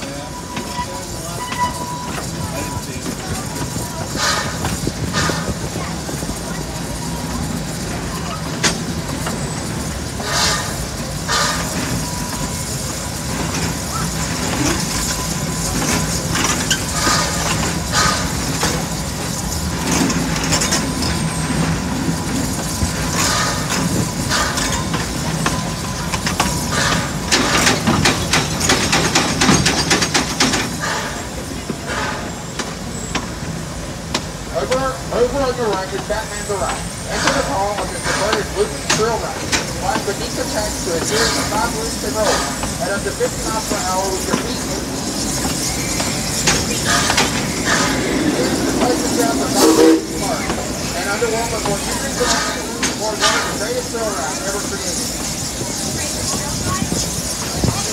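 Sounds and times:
clicks and knocks of train: 0.0 - 57.9
steam train running: 0.0 - 57.9.

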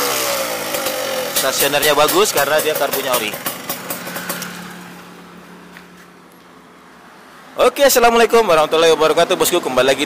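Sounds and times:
two-stroke engine idling: 0.0 - 5.2.

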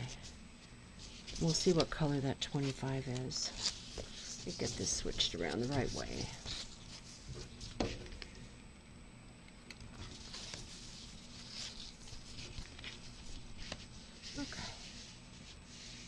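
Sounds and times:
fabric rustling and crinkling: 1.0 - 8.2, 10.0 - 16.0.

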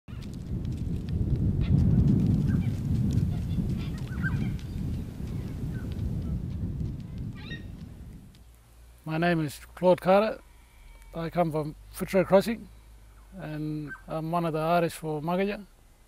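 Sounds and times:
steady low rumble: 0.1 - 14.5
birds chirping: 2.5 - 6.4, 7.1 - 8.7, 10.3 - 14.4.

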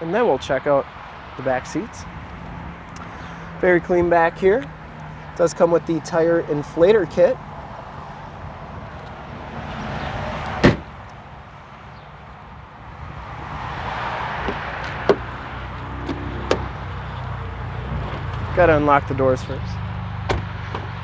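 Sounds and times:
car trunk lid slamming: 10.6 - 11.0, 20.2 - 20.9.

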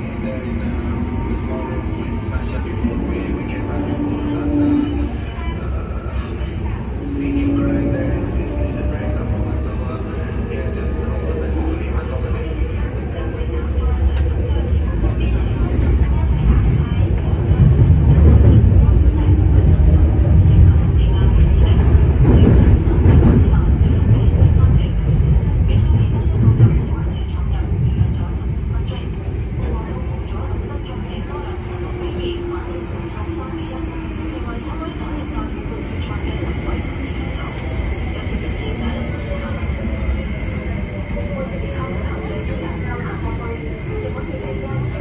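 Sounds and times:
train wheels rumbling on rails: 0.0 - 45.0.

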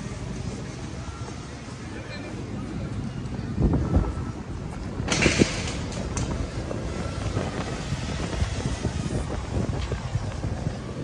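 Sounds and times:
outdoor ambience: 0.0 - 11.0
wind buffeting microphone: 2.4 - 11.0.

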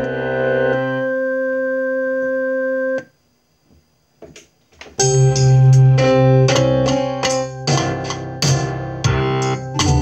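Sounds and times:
electronic keyboard organ chord: 0.0 - 3.1, 5.0 - 10.0.

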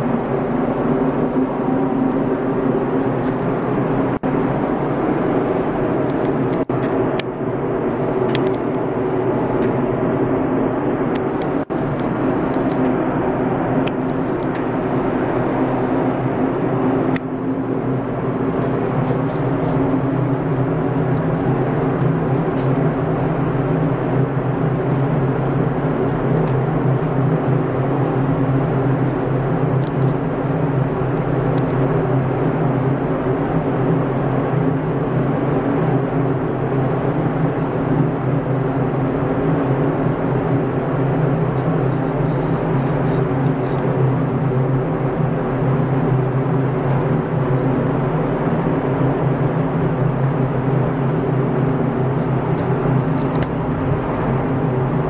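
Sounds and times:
ventilation fan droning: 0.0 - 55.0.

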